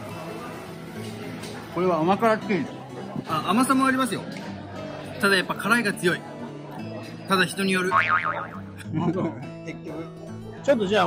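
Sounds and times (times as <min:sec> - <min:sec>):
background music: 0:00.0 - 0:11.0
cartoon boing effect: 0:07.9 - 0:08.8.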